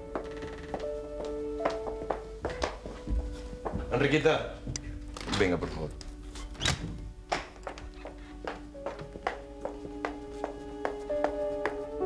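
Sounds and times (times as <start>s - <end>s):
footsteps on hard floor: 0.0s - 5.2s, 5.9s - 12.0s
soft background music: 0.0s - 12.0s.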